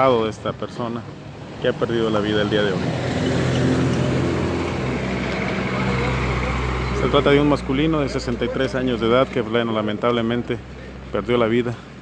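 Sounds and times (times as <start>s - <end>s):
truck engine hum: 0.0s - 12.0s
deeper truck rumble: 0.6s - 12.0s.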